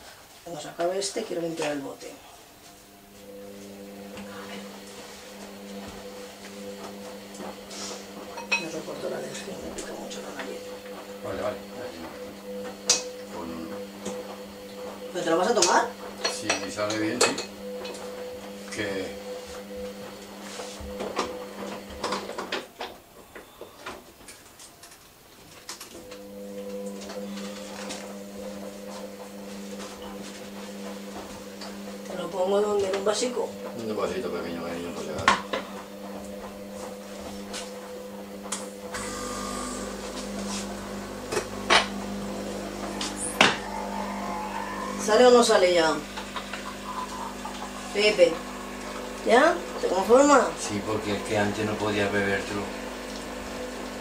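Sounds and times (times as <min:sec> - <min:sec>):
electric appliance hum: 0:00.0 - 0:54.0
dishes and utensils clattering: 0:08.4 - 0:08.8.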